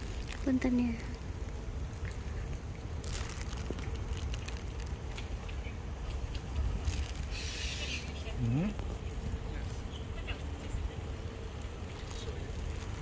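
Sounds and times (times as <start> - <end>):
brief hiss: 7.2 - 8.1.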